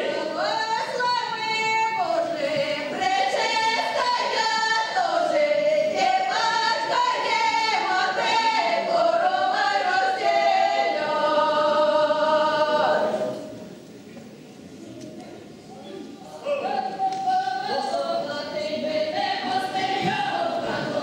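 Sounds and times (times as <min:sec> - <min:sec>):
choir singing a cappella: 0:00.0 - 0:13.8, 0:16.4 - 0:21.0.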